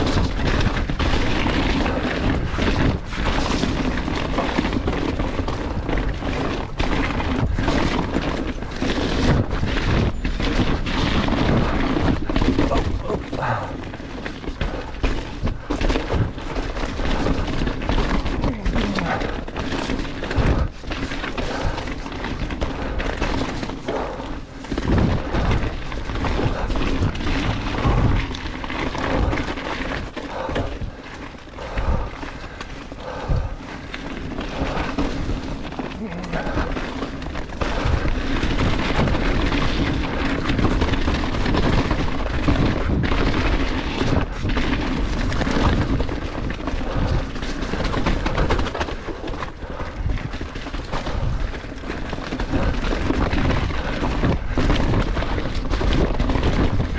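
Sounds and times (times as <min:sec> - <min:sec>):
bike frame rattling and knocking: 0:00.0 - 0:56.9
bike tyres rolling over dirt: 0:00.0 - 0:56.9
wind on microphone: 0:23.8 - 0:28.4.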